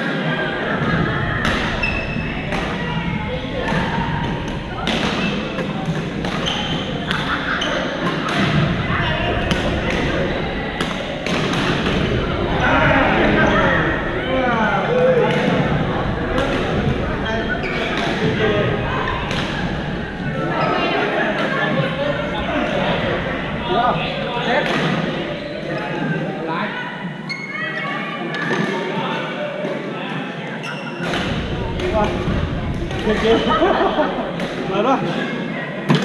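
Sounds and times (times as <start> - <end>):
murmur of voices: 0.0 - 36.0.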